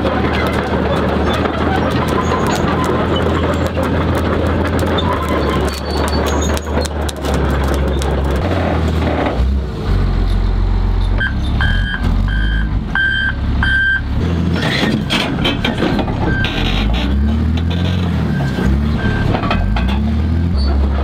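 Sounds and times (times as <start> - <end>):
diesel engine running: 0.0 - 21.0
reversing alarm beeping: 11.2 - 14.1, 18.3 - 19.3.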